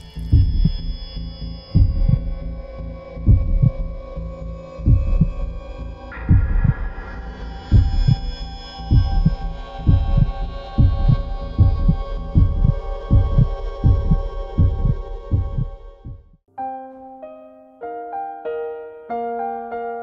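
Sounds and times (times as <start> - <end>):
heartbeat thumps: 0.2 - 0.9, 1.8 - 2.4, 3.2 - 4.0, 4.8 - 16.4.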